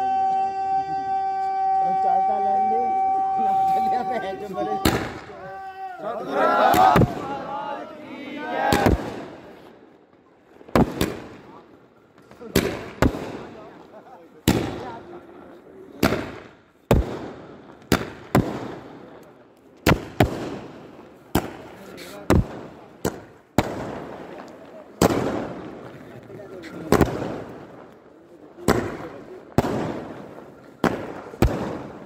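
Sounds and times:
fireworks bangs with echo: 0:02.9 - 0:05.6, 0:06.6 - 0:07.6, 0:08.6 - 0:32.0.

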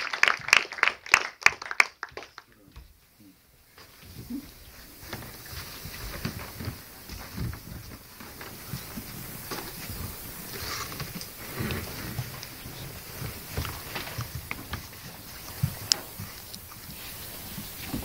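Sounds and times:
audience rustling and shuffling: 0:00.0 - 0:18.0.

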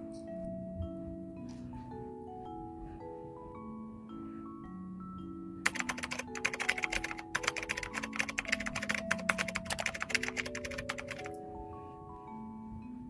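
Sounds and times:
soft mallet instrument music: 0:00.0 - 0:13.0
rapid keyboard typing: 0:05.6 - 0:11.4.

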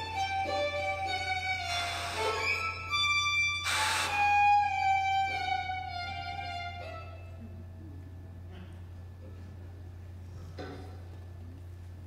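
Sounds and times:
violin sustained notes: 0:00.0 - 0:07.4.

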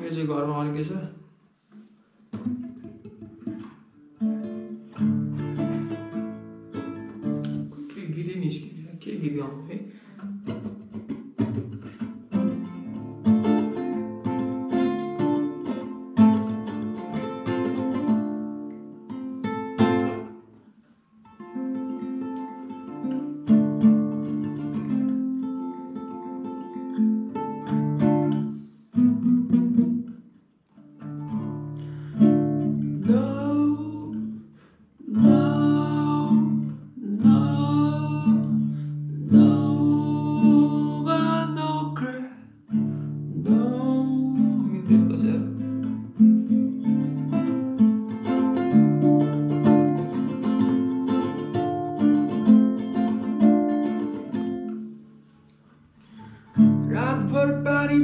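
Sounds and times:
fingerpicked acoustic guitar: 0:00.0 - 0:58.0
man singing: 0:33.0 - 0:34.3, 0:35.0 - 0:42.5, 0:43.3 - 0:45.8, 0:56.8 - 0:58.0.

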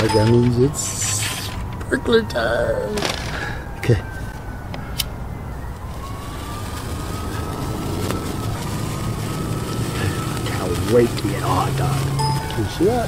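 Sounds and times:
faint distant siren: 0:00.0 - 0:13.0.

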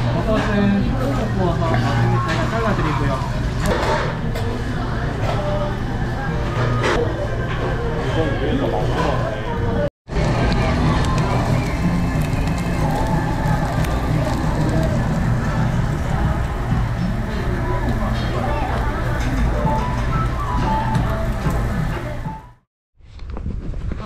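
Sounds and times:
voices: 0:04.4 - 0:22.4
background music: 0:10.2 - 0:22.6.

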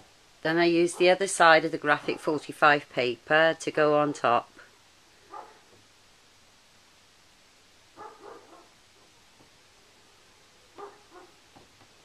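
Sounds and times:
dog barking faintly: 0:05.3 - 0:05.7, 0:08.0 - 0:09.1, 0:10.7 - 0:11.4.

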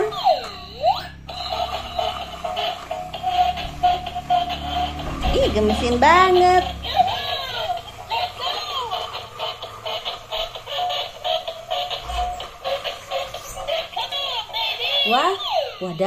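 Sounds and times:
toy playing electronic song: 0:00.0 - 0:16.0.

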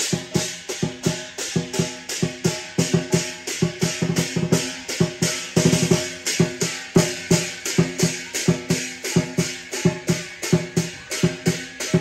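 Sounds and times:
big drum: 0:00.0 - 0:12.0
gong: 0:00.0 - 0:12.0
hand cymbals: 0:00.0 - 0:12.0.

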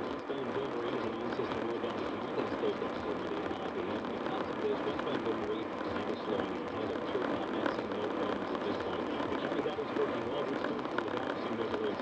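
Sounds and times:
muffled talk radio voice: 0:00.0 - 0:12.0
road and tyre noise in car: 0:00.0 - 0:12.0.

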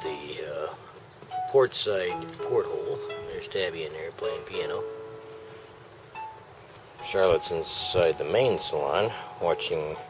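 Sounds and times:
faint piano notes: 0:00.0 - 0:10.0.

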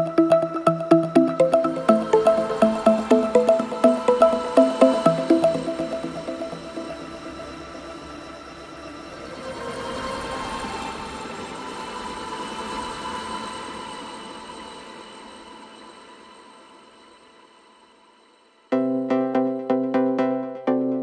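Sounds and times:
soft held tones: 0:00.0 - 0:07.4.

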